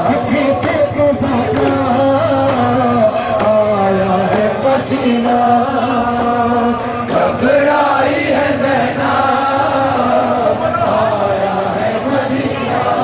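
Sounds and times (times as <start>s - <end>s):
voices chanting slowly: 0.0s - 13.0s.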